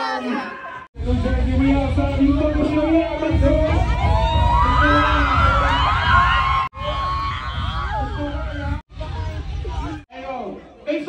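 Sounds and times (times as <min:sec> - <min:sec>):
crowd shouting and rapping along: 0:00.0 - 0:10.0
rap music with heavy bass: 0:01.0 - 0:11.0.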